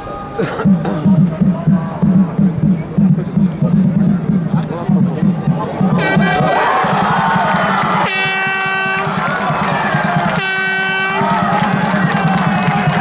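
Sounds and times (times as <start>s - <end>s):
crowd noise: 0.0s - 13.0s
air horn blasts: 8.0s - 9.2s, 10.2s - 11.5s.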